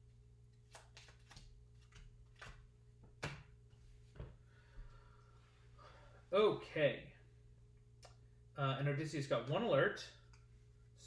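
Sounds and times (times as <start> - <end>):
faint low hum: 0.0 - 11.0
playing cards clicking and rustling: 0.6 - 3.6.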